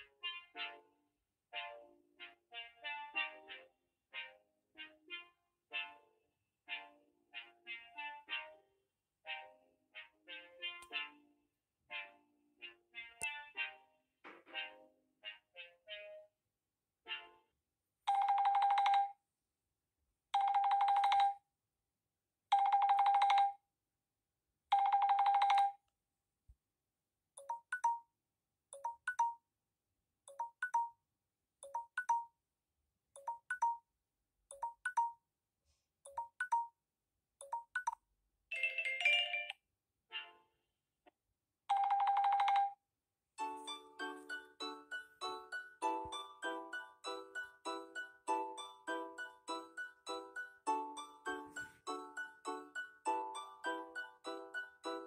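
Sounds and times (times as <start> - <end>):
phone alert melody: 37.4 - 40.4, 43.4 - 55.0.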